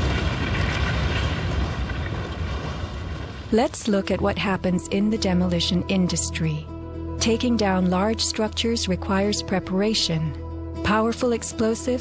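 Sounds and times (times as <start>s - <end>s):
deep rumble after blast: 0.0s - 4.8s.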